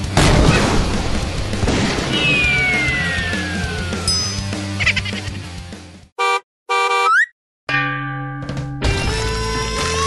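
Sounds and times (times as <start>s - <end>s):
cartoon horn honks: 6.2s - 7.3s.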